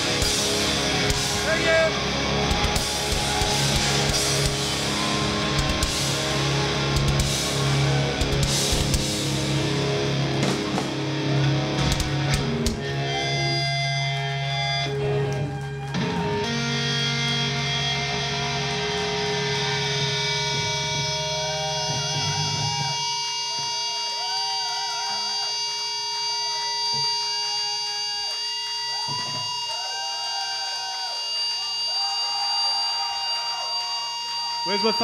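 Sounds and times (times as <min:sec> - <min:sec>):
electric guitars held chord: 0:00.0 - 0:29.6
bass: 0:00.0 - 0:30.4
guitar feedback: 0:00.0 - 0:35.0.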